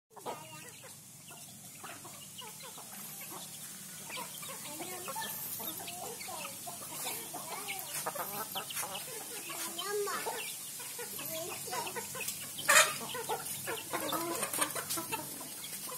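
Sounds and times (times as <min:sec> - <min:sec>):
chickens clucking: 0:00.1 - 0:15.9.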